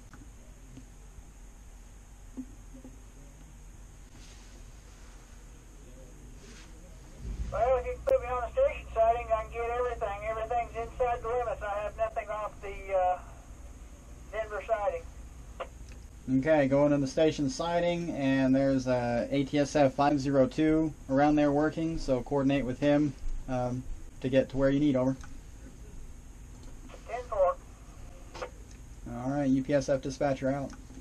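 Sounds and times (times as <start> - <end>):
low hum: 0.0 - 18.8
man's voice over radio speaker: 7.5 - 13.4, 14.3 - 15.1, 26.9 - 27.6.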